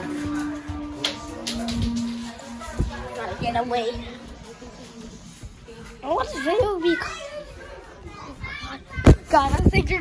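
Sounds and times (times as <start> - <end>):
children's voices: 0.4 - 10.0.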